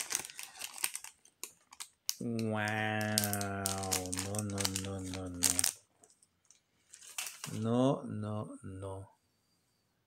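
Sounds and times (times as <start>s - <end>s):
plastic wrapper crinkling: 0.0s - 7.8s
man's drawn-out admiring vocal: 2.2s - 5.6s.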